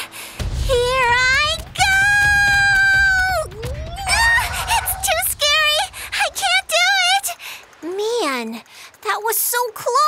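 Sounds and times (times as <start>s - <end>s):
shaky cries: 2.5s - 6.9s
cartoon character screaming: 3.8s - 5.3s.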